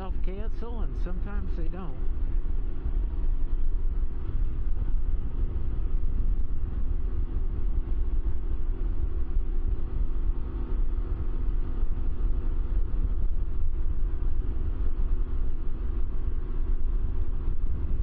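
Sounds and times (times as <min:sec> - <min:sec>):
engine humming: 0:00.0 - 0:18.0
wind rumble on microphone: 0:00.0 - 0:18.0.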